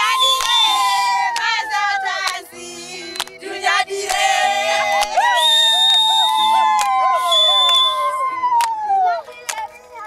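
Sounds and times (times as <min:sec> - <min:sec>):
women singing: 0:00.0 - 0:05.5
hand claps: 0:00.2 - 0:01.6, 0:02.2 - 0:02.4, 0:03.1 - 0:03.4, 0:06.6 - 0:09.8.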